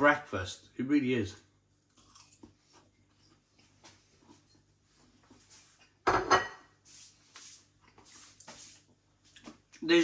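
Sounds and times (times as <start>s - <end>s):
man speaking: 0.0s - 1.4s
crockery clattering: 6.1s - 6.7s.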